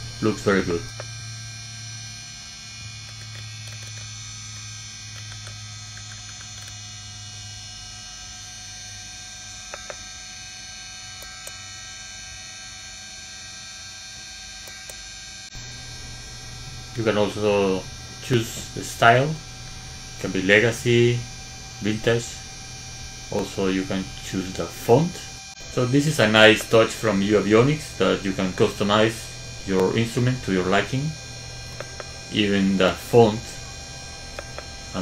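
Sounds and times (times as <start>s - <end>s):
electrical hum with high whine: 0.0s - 35.0s
rotary knob clicks: 3.0s - 4.1s.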